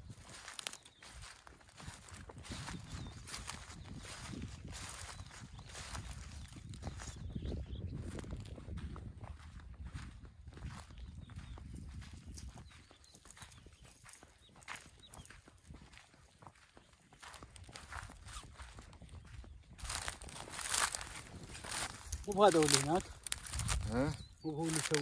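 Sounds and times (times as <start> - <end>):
footsteps on sandy dirt track: 0.0 - 25.0.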